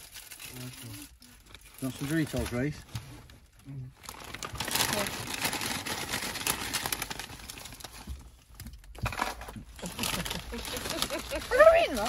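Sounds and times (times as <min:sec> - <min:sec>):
crisp packet crinkling: 0:00.0 - 0:02.8, 0:04.0 - 0:12.0.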